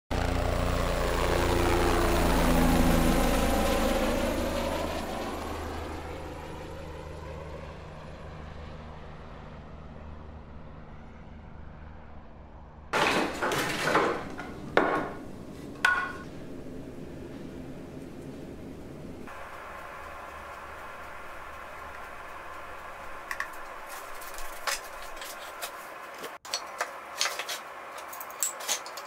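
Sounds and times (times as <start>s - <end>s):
aircraft engine passing overhead: 0.1s - 13.0s, 14.1s - 26.4s
wooden pieces knocking on workbench: 13.0s - 15.2s, 15.8s - 16.2s.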